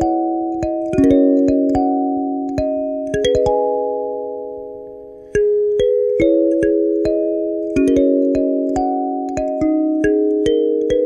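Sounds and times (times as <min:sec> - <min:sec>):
kalimba notes plucked: 0:00.0 - 0:11.0.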